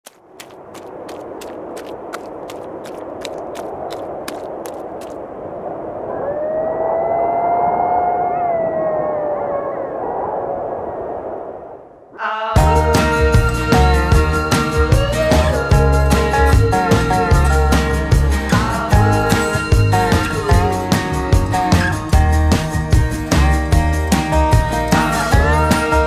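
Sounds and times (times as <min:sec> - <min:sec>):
wind-like rushing: 0:00.2 - 0:12.2
dog howling: 0:06.1 - 0:10.0.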